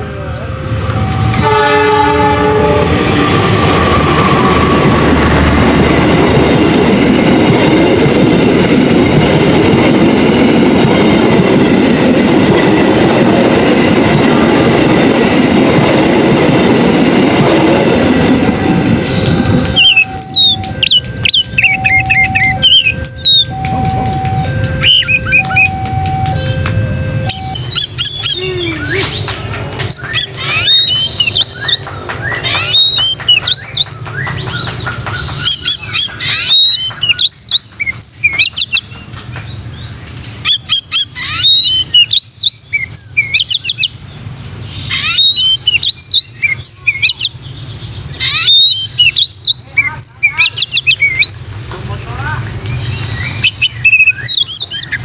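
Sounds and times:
train rumbling: 0:00.0 - 0:55.0
two-note tone: 0:19.8 - 0:27.7
bird singing whistled phrases: 0:19.8 - 0:34.7, 0:44.9 - 0:47.4, 0:48.2 - 0:51.5, 0:52.7 - 0:55.0.

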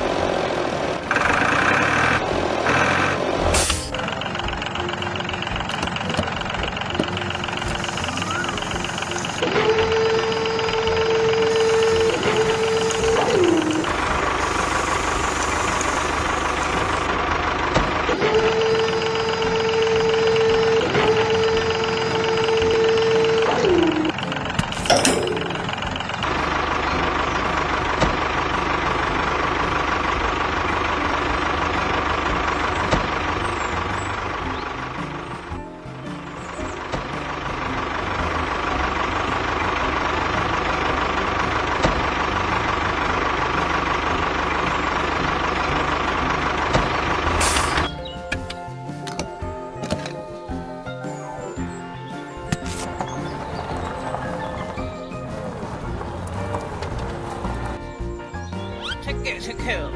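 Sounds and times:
tractor engine running: 0:00.0 - 0:59.9.

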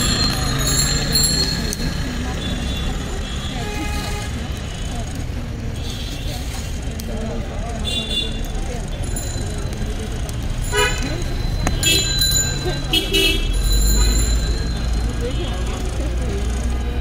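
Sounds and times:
background chatter: 0:00.0 - 0:17.0
traffic rumble: 0:00.0 - 0:17.0.

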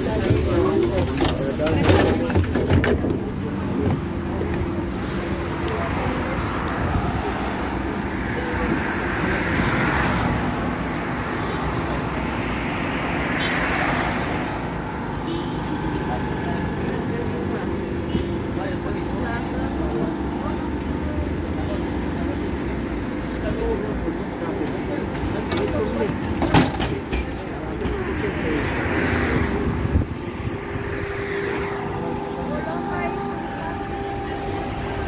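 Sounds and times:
street traffic: 0:00.0 - 0:35.0
trolleybus humming: 0:00.0 - 0:35.0.

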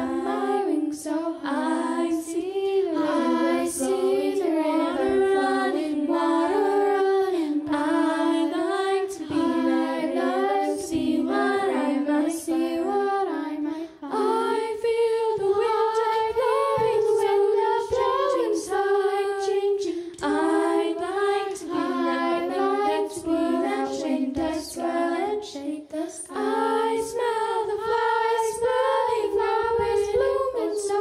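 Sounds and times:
children singing in harmony: 0:00.0 - 0:31.0.

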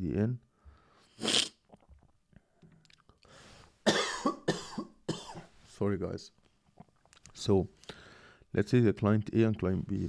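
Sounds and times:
man coughing: 0:03.8 - 0:05.5.

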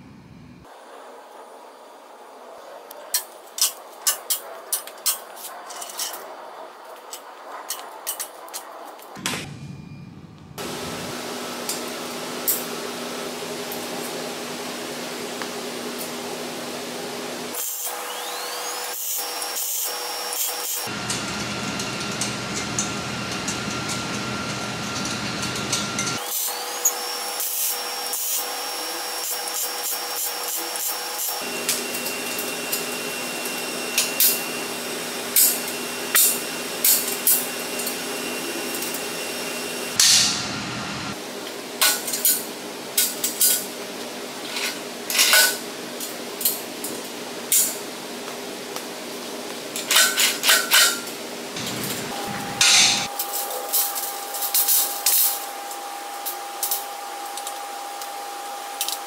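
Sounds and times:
steady background tone: 0:00.0 - 0:11.1.

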